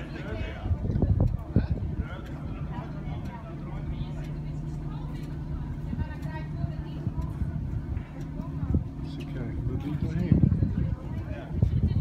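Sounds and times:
motorboat engine humming: 0.0s - 12.0s
people chattering: 0.0s - 12.0s.

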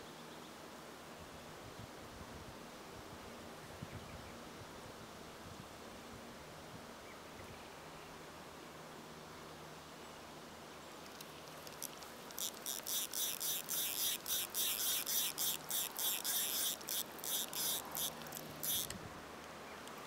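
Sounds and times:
spinning reel whirring: 11.7s - 18.9s.

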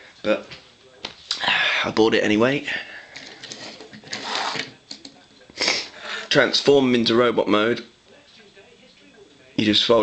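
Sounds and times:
plastic toy scraping on wood: 3.3s - 4.7s.

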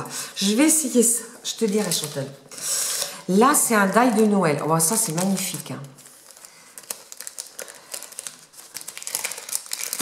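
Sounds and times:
plastic packaging crinkling: 1.5s - 2.4s, 4.1s - 10.0s.

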